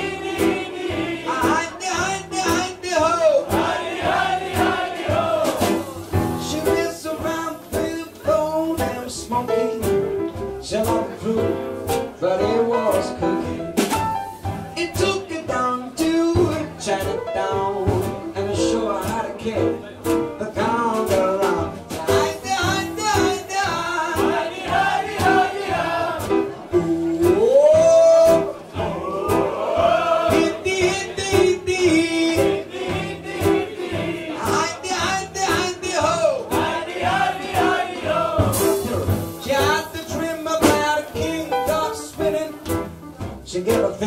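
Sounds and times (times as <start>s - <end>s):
acoustic guitar: 0.0s - 44.0s
swing band playing: 0.0s - 44.0s
upright bass: 0.0s - 44.0s
man singing: 1.2s - 3.6s, 6.2s - 13.6s, 14.7s - 24.4s, 26.7s - 29.5s, 30.2s - 32.7s, 34.3s - 36.5s, 38.6s - 44.0s
person singing: 5.8s - 13.4s, 20.4s - 24.5s, 38.6s - 42.7s.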